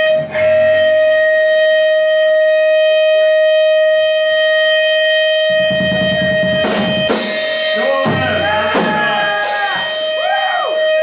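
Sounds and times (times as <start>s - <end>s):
guitar amplifier feedback: 0.0s - 11.0s
low bass notes: 0.0s - 11.0s
drum crash: 5.7s - 10.2s.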